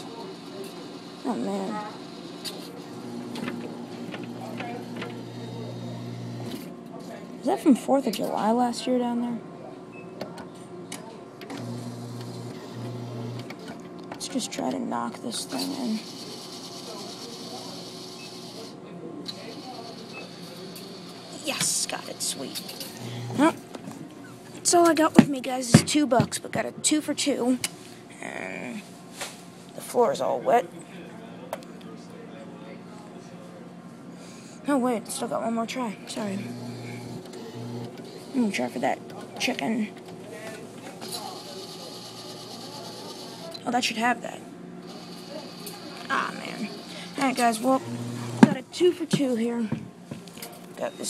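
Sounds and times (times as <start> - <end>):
claw machine motors whirring: 0.0 - 6.7, 11.4 - 13.9, 15.6 - 25.1, 36.1 - 43.6, 44.8 - 48.6
steady hum: 0.0 - 9.5, 11.4 - 18.8, 19.4 - 28.9, 33.9 - 51.0
murmur of voices: 0.0 - 51.0
thin high whine: 36.1 - 39.8.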